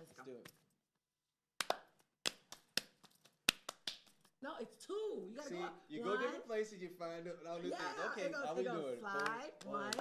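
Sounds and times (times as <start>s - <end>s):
hands clapping in clapping game: 1.6s - 4.4s, 9.1s - 10.0s.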